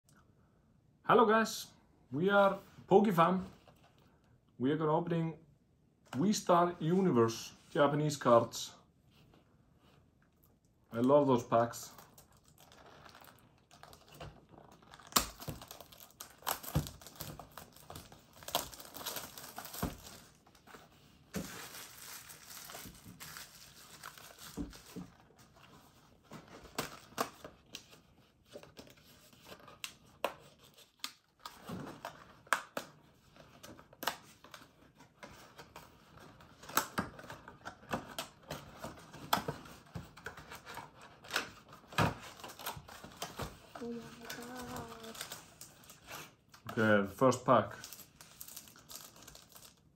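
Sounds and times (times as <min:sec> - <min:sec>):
packaging crinkling and tearing: 0:11.6 - 0:25.8, 0:28.6 - 0:46.8, 0:47.7 - 0:49.9.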